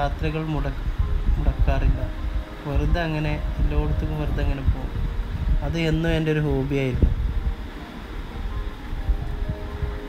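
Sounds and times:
wind and road noise rumble: 0.0 - 10.0.

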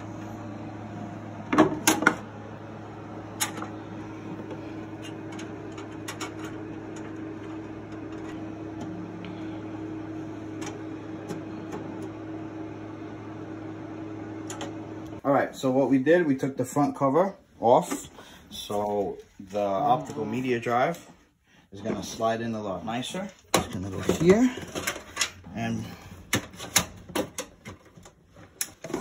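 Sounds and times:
steady low hum: 0.0 - 28.8.

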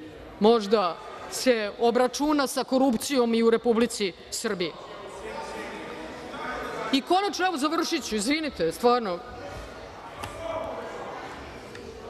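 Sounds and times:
voices murmuring in hall: 0.0 - 12.0.

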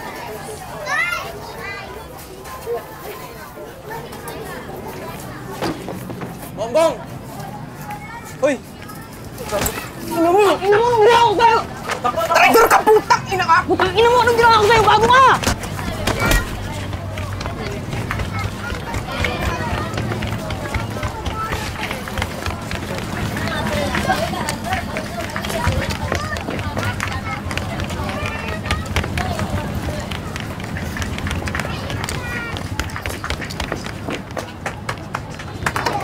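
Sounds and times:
running footsteps on street: 0.0 - 36.0.

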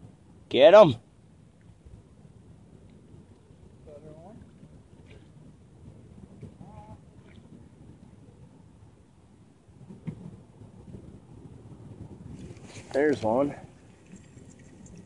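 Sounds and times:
wind rumble on microphone: 0.0 - 15.0
faint voice sounds: 6.6 - 7.1.

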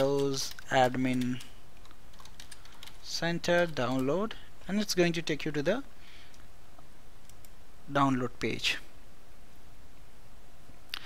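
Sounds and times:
low background noise: 0.0 - 11.0
computer mouse clicks: 7.2 - 7.6.

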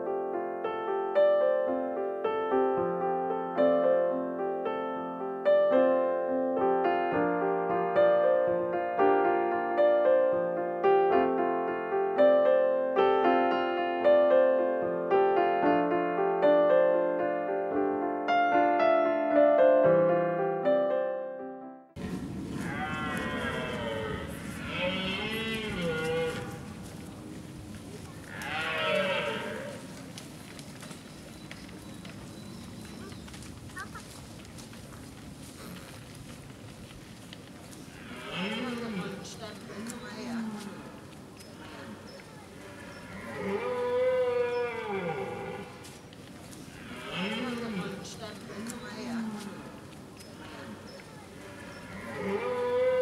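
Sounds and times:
deer stag roaring: 22.0 - 26.7, 28.3 - 29.9, 51.4 - 53.0.

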